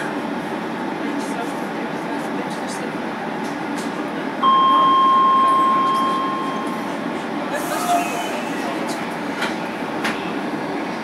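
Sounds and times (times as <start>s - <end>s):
train running along track: 0.0s - 11.0s
electronic beep: 4.4s - 6.8s.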